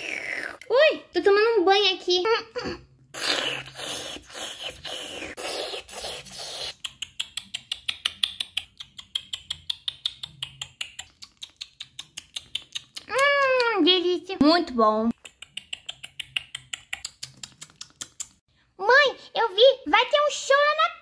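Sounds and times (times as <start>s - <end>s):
breathy mouth slurping: 3.1s - 7.0s
wet mouth smacking clicks: 6.0s - 13.8s, 15.1s - 18.4s.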